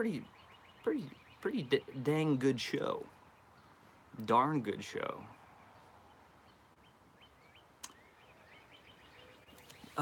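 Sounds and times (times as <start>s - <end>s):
faint bird chirps: 0.0s - 2.4s, 5.2s - 10.0s
sharp click: 7.8s - 8.0s.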